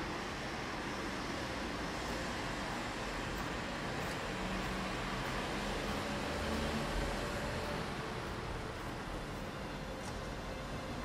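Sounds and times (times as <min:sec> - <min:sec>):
outdoor background hiss and rumble: 0:00.0 - 0:11.0.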